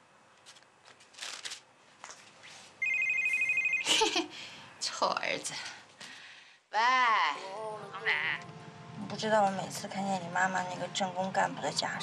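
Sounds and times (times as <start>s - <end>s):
woman talking: 4.8s - 5.8s, 6.8s - 12.0s.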